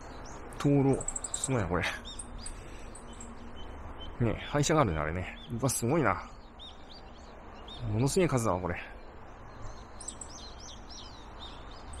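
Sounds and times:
songbird chirping: 0:00.0 - 0:12.0.

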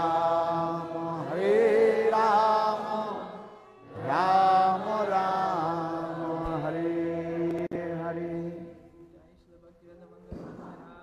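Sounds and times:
devotional chanting: 0:00.0 - 0:11.0.

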